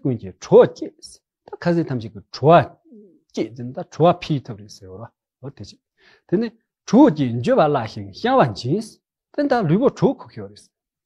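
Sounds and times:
man talking: 0:00.0 - 0:10.8.

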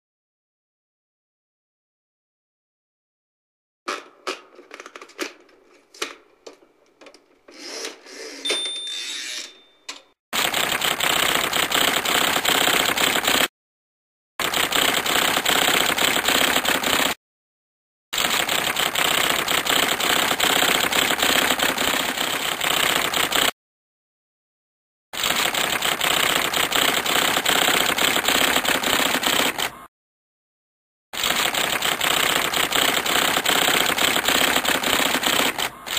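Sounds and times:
typewriter clatter: 0:03.9 - 0:07.5, 0:10.4 - 0:13.5, 0:14.4 - 0:17.2, 0:18.2 - 0:23.5, 0:25.2 - 0:29.7, 0:31.2 - 0:35.9.

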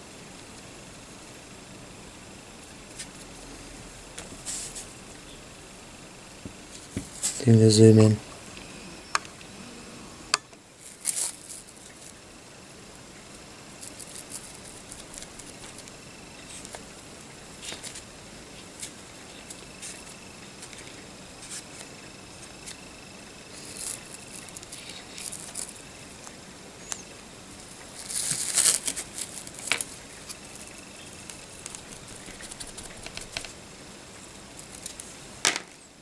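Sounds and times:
brush scratching plastic model: 0:31.4 - 0:33.5.

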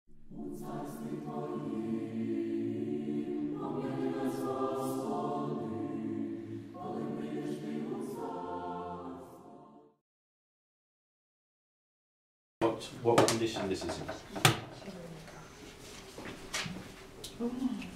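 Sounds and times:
choir singing slow chant: 0:00.2 - 0:10.0.

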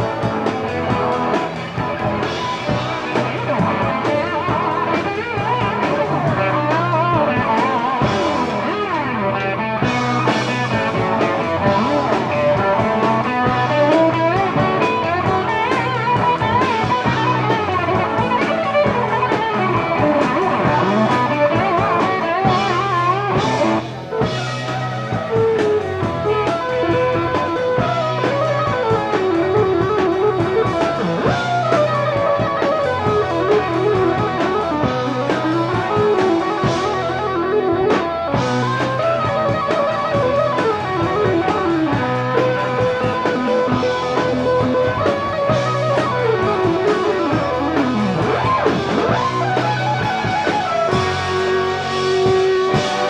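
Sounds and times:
bass guitar: 0:00.0 - 0:53.0
drum kit: 0:00.0 - 0:53.0
electric guitar lead: 0:00.0 - 0:53.0.

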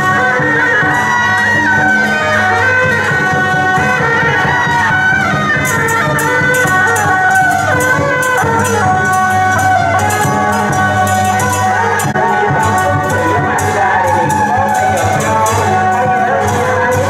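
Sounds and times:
double-reed horns playing melody: 0:00.0 - 0:17.0
sharp percussion strikes: 0:00.0 - 0:17.0.

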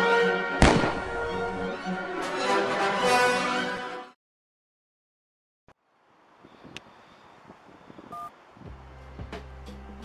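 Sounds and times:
faint outdoor background noise: 0:05.7 - 0:10.0
phone keypad beep: 0:08.1 - 0:08.3
low steady music: 0:08.6 - 0:10.0.

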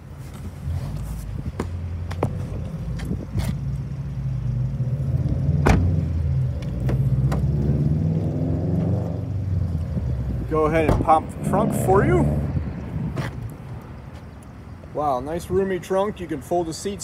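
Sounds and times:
low vehicle rumble: 0:00.0 - 0:15.9
car door clicks and knock: 0:05.6 - 0:05.9.

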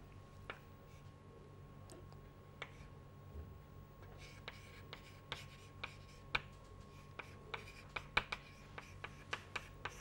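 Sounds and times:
faint steady hum: 0:00.0 - 0:10.0
chalk tapping and scraping on board: 0:04.1 - 0:10.0.

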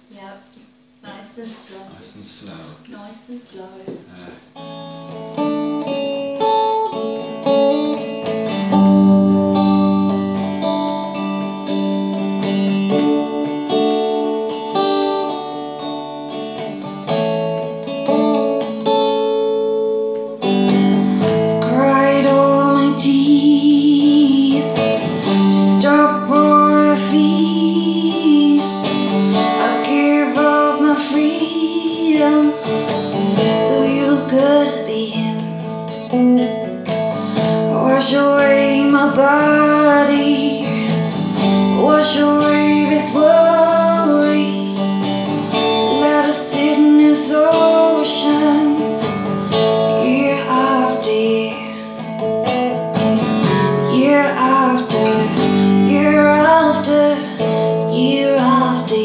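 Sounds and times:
electric guitar chords: 0:03.6 - 0:59.0
woman singing: 0:21.0 - 0:36.2, 0:37.2 - 0:52.1, 0:53.0 - 0:59.0.

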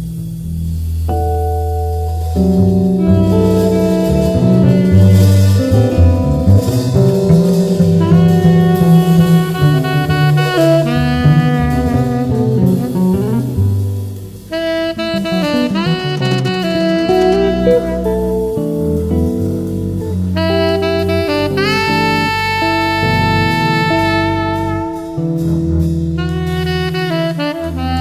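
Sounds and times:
jazz band accompaniment: 0:00.0 - 0:28.0
saxophone long held notes: 0:02.6 - 0:28.0.

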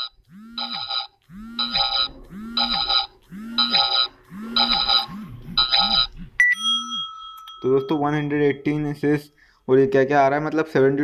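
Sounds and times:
steady held electronic tone: 0:00.0 - 0:07.5
chiming electronic tones: 0:00.0 - 0:08.8.

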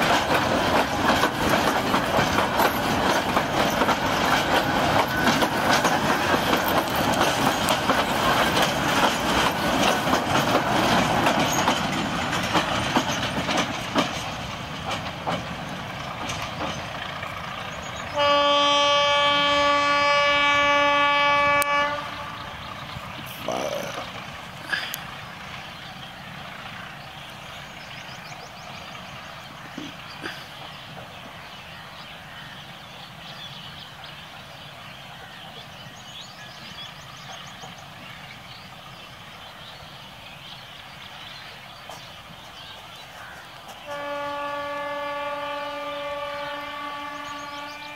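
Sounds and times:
train rumbling on track: 0:00.0 - 0:47.9
locomotive air horn blast: 0:18.1 - 0:22.6, 0:43.8 - 0:47.9.

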